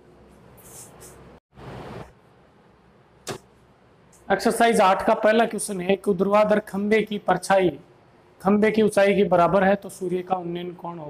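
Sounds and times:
marker scratching on whiteboard: 0.6 - 1.3.

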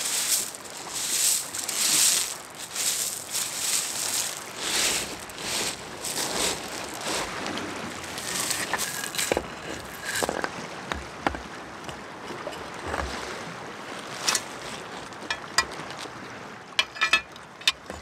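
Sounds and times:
pebbles crunching and rattling: 0.0 - 10.5.

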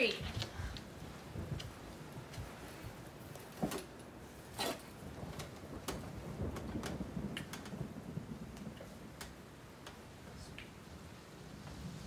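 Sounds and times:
small clicks and taps from hands: 6.6 - 7.8.

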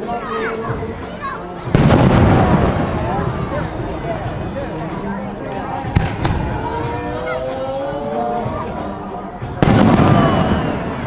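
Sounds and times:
children's voices: 0.0 - 11.0
spectators chattering: 0.0 - 11.0
loud firework boom: 1.7 - 3.6, 9.6 - 10.8.

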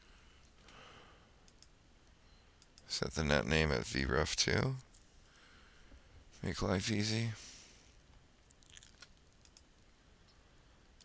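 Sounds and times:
quiet room hiss: 0.0 - 11.0
computer mouse and key clicks: 1.5 - 1.8, 2.6 - 2.9, 8.9 - 10.4.

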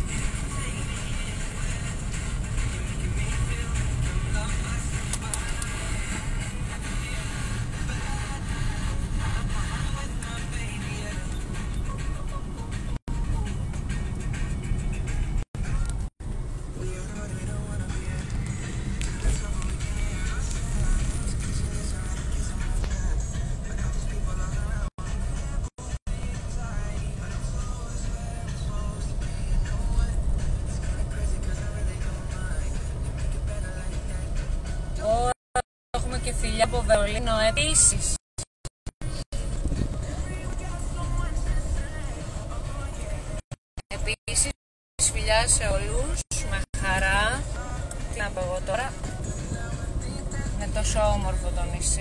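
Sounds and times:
car road and engine rumble: 0.0 - 52.0.

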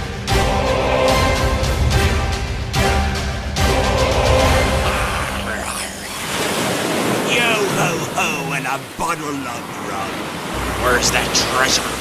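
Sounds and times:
theme tune music: 0.0 - 6.5
ocean surf: 0.0 - 12.0.

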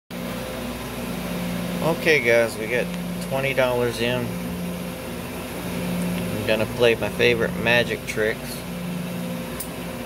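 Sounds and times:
low machine hum: 0.1 - 10.0.

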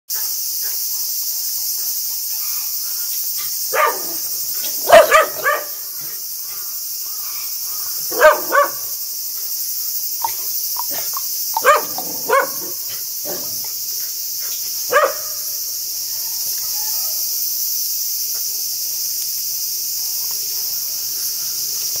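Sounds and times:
high insect buzz: 0.1 - 22.0
dog barking: 3.7 - 4.2, 4.8 - 5.8, 8.1 - 8.9, 10.2 - 13.6, 14.9 - 15.4.

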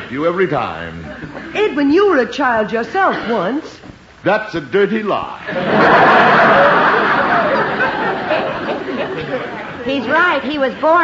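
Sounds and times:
woman speaking: 1.5 - 3.9, 9.8 - 11.0
audience laughter: 5.5 - 11.0.

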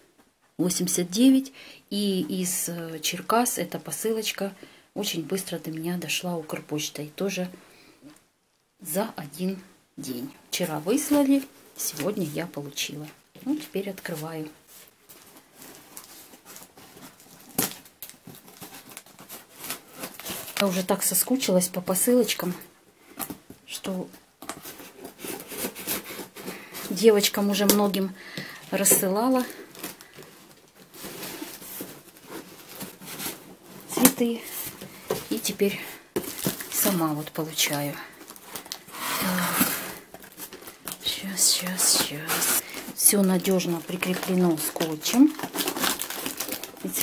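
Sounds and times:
paper wrapping crinkling: 13.4 - 21.1, 24.4 - 47.0
cardboard flaps rustling: 28.7 - 47.0
cardboard cracking: 36.2 - 37.0, 38.2 - 47.0.

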